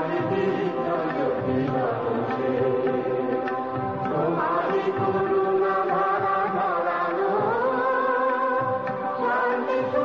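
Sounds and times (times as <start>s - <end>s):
sustained instrumental accompaniment: 0.0s - 10.0s
voices chanting devotional song: 0.0s - 10.0s.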